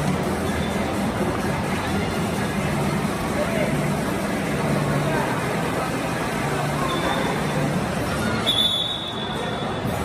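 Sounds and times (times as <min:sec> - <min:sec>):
crowd hubbub in a hall: 0:00.0 - 0:10.0.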